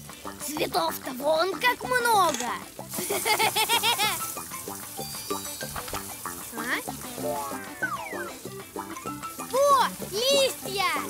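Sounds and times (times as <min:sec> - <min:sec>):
garden hose spraying water: 0:00.0 - 0:11.0
light background music: 0:00.0 - 0:11.0.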